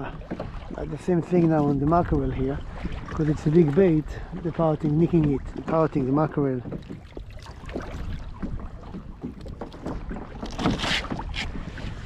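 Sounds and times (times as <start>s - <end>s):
water lapping against kayak hull: 0.0s - 12.0s
wind rumbling on microphone: 0.0s - 12.0s
water splash: 6.8s - 12.0s.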